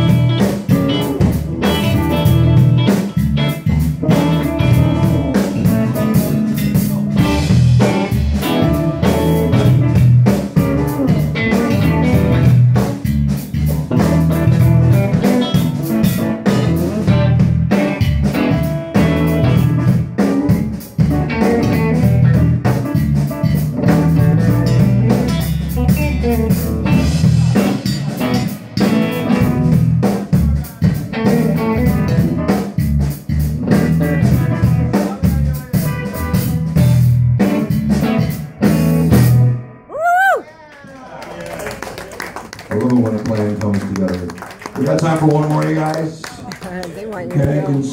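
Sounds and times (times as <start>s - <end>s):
band playing guitar-led instrumental: 0.0s - 40.4s, 43.3s - 47.9s.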